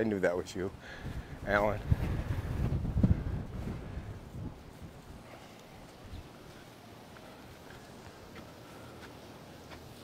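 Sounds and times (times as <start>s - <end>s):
wind buffeting microphone: 0.7s - 6.6s.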